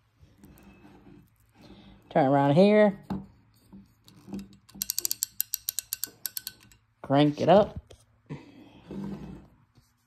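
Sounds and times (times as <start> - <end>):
ratchet clicks: 4.7 - 6.8.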